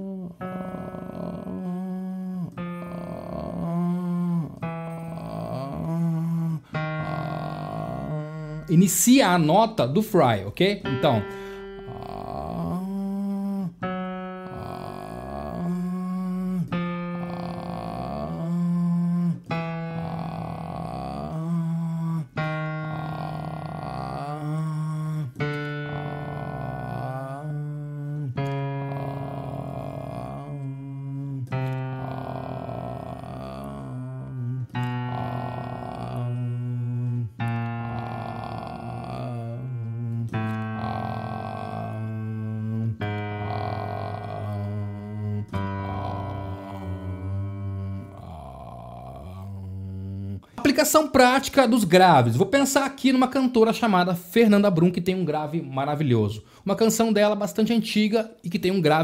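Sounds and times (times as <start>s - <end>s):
piano chords: 0.0s - 49.8s
man singing vocal exercise: 0.0s - 57.7s.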